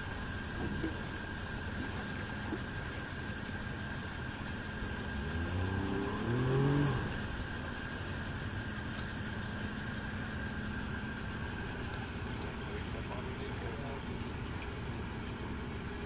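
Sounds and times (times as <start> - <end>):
outboard motor running: 0.0 - 16.0.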